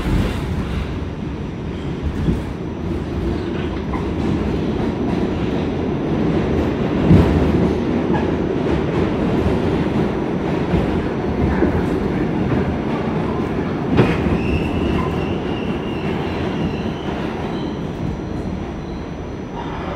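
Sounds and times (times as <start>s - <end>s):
subway train rumbling on rails: 0.0s - 19.9s.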